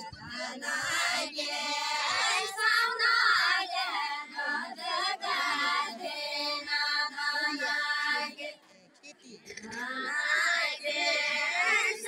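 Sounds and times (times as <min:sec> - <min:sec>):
women singing a folk song: 0:00.0 - 0:08.6, 0:09.7 - 0:12.0.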